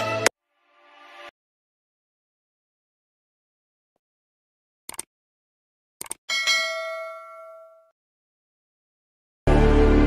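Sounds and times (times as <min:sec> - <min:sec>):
quick double click: 0:04.9 - 0:05.1
bell ding: 0:06.3 - 0:07.9.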